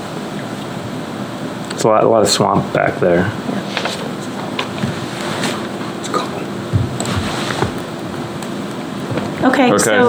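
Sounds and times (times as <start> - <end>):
ventilation hiss and hum: 0.0 - 10.0
papers rustling: 6.8 - 8.0.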